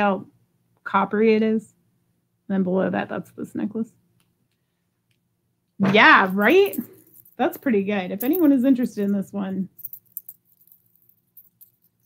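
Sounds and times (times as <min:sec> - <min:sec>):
chain necklace clinking: 0:06.2 - 0:12.0.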